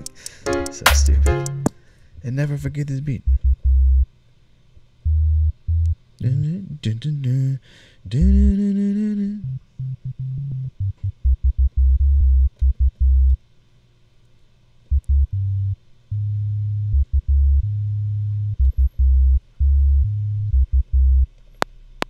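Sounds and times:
sharp clicks: 0.0s - 1.8s
deep synth bass notes: 0.7s - 1.7s, 3.2s - 4.1s, 5.0s - 6.5s, 8.2s - 8.6s, 9.4s - 13.4s, 14.9s - 21.4s.

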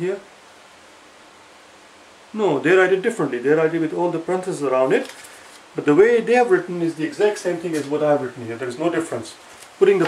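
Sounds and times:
man speaking: 0.0s - 0.3s, 2.3s - 10.0s
steady room tone hiss: 0.0s - 10.0s.

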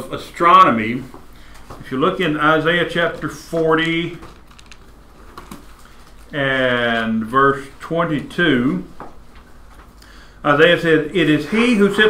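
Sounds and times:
paper pages rustling: 3.4s - 7.3s.

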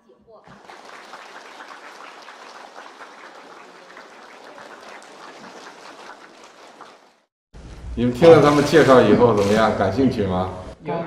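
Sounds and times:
group of people applauding: 0.5s - 7.3s.

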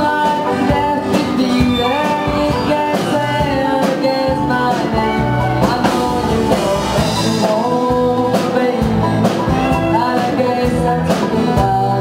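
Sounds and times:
country band playing: 0.0s - 12.0s
strummed acoustic guitar: 0.0s - 12.0s.

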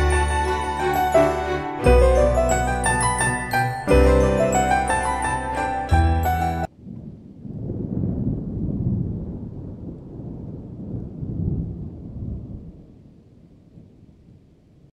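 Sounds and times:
low rolling rumble: 6.6s - 14.9s.

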